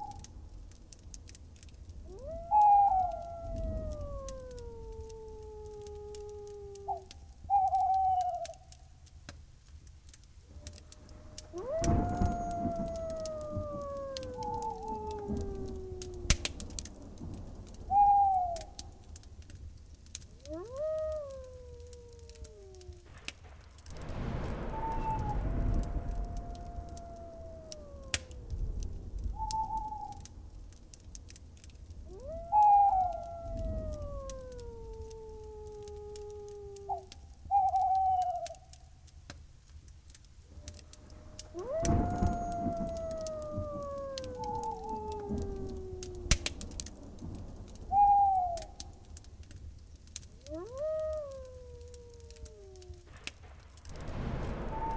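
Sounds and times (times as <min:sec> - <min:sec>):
animal howls gliding down: 0:00.0 - 0:00.3, 0:02.0 - 0:08.8, 0:10.5 - 0:19.2, 0:20.3 - 0:30.3, 0:32.0 - 0:38.8, 0:40.5 - 0:49.6, 0:50.3 - 0:54.9
wind-like noise: 0:00.0 - 0:54.9.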